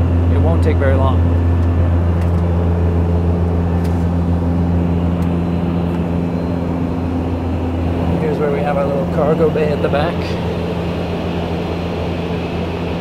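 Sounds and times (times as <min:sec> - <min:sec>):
turboprop cabin drone: 0:00.0 - 0:13.0
steady tones: 0:00.2 - 0:13.0.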